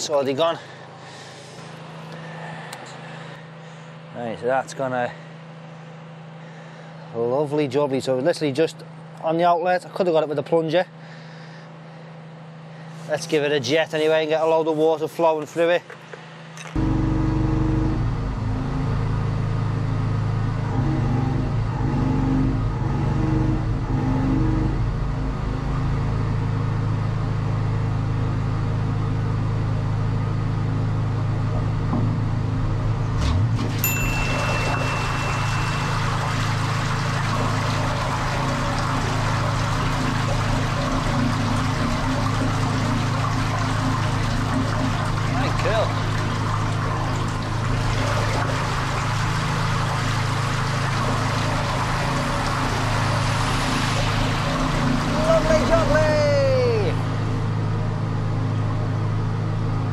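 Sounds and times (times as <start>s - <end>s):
engine running steadily: 0.0s - 7.7s, 15.4s - 59.9s
water rushing through channel: 33.5s - 57.2s
high-pressure water jet: 33.6s - 56.8s.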